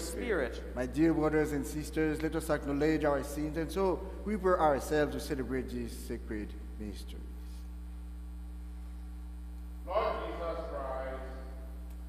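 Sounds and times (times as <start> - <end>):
man speaking: 0.0 - 7.4, 9.8 - 11.7
electrical mains hum: 0.0 - 12.0.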